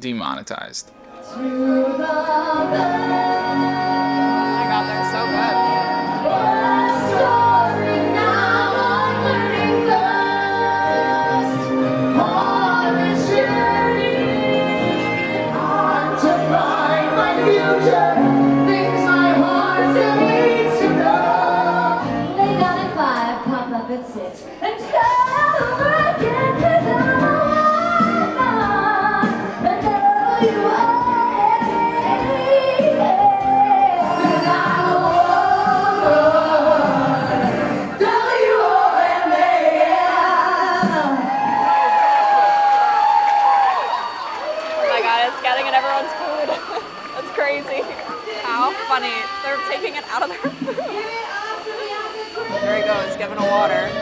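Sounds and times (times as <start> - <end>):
backing music: 0.0 - 54.0.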